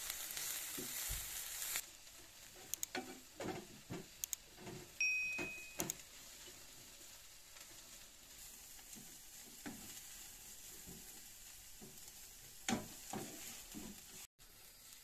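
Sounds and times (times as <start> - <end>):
herbs sizzling in a pan: 0.0 - 15.0
spatula scraping a pan: 0.1 - 5.0, 6.0 - 15.0.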